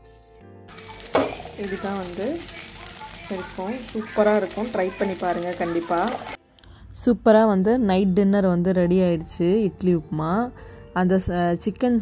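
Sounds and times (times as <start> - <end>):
woman speaking: 1.3 - 6.4.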